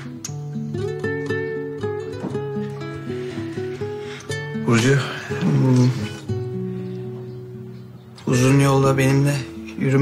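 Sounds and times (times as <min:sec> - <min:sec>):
plucked acoustic guitar melody: 0:00.0 - 0:10.0.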